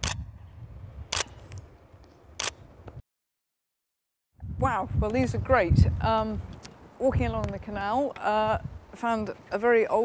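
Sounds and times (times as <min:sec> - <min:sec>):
camera shutter clicks: 0:00.0 - 0:00.2, 0:01.1 - 0:01.4, 0:02.4 - 0:02.6.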